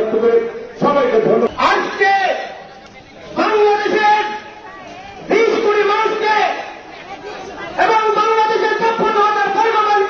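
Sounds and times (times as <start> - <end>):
man speaking into a microphone: 0.0 - 2.6, 3.2 - 4.6, 5.3 - 6.8, 7.8 - 10.0
crowd chatter: 0.0 - 10.0.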